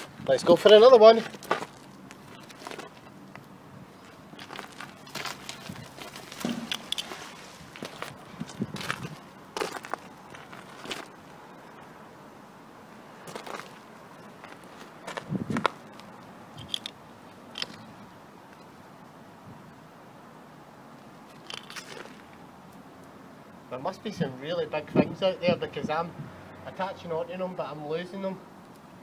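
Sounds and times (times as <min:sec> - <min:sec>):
boots scuffing on gravel: 0:00.0 - 0:03.2, 0:04.0 - 0:11.4, 0:13.2 - 0:16.1
rope being handled: 0:00.0 - 0:11.4.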